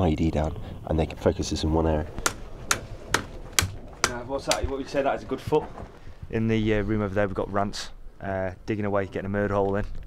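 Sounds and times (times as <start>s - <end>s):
hand tool striking mud wall: 2.2s - 4.8s.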